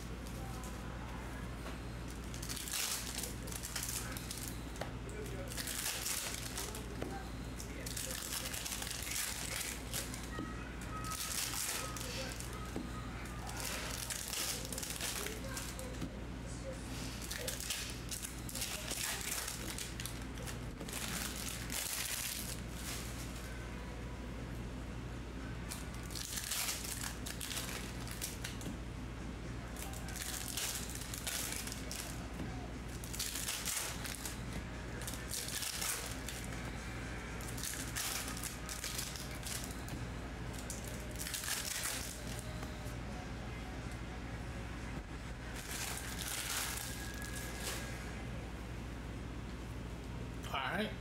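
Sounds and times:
steady low hum: 0.0 - 51.0
foil wrapper crinkling: 2.1 - 4.6, 5.2 - 6.9, 7.7 - 10.4, 11.0 - 12.6, 13.2 - 16.0, 17.2 - 23.4, 25.7 - 28.6, 29.8 - 32.2, 32.9 - 36.5, 37.4 - 39.9, 40.5 - 42.4, 45.6 - 47.9.

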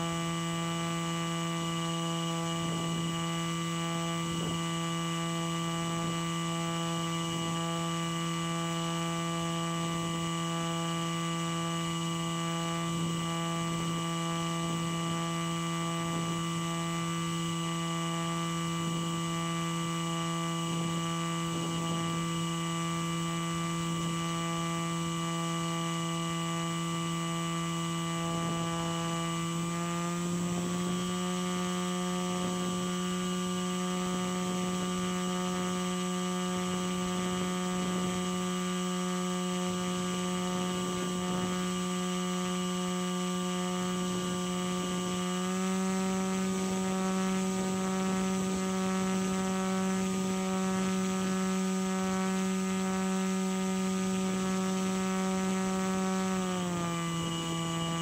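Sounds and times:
small motor droning: 0.0 - 58.0.

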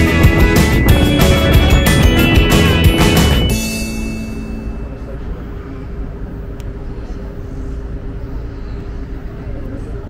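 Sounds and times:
low city rumble: 0.0 - 10.0.

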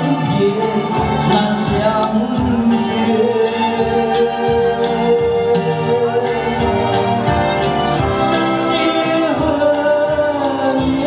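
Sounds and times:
man singing into microphone: 0.0 - 7.4, 8.3 - 11.0
keyboard accompaniment: 0.0 - 11.0.

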